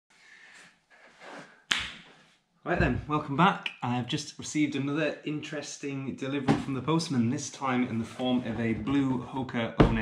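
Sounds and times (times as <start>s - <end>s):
sharp hand clap: 1.7s - 2.0s
faint rustling movement: 7.8s - 9.2s.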